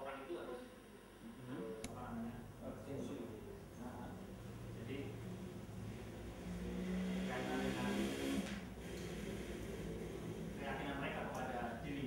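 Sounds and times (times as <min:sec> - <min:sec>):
steady low hum: 0:00.0 - 0:12.0
vehicle engine: 0:04.4 - 0:10.8.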